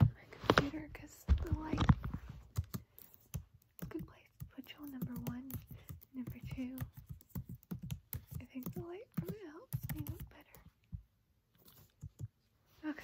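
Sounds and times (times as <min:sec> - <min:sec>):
woman talking quietly: 0:00.0 - 0:02.1, 0:08.4 - 0:10.7, 0:12.8 - 0:13.0
laptop keys typing: 0:02.4 - 0:10.7.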